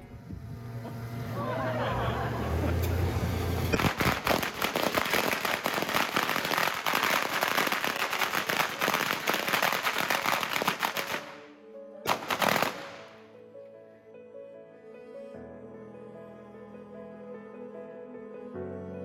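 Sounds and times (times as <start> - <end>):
firecrackers popping: 3.7 - 11.4, 12.1 - 13.2.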